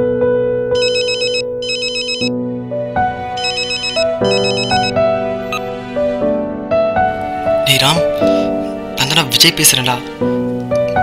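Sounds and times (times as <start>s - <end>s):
slow background music: 0.0s - 11.0s
mobile phone ringing: 0.8s - 2.4s, 3.3s - 5.7s.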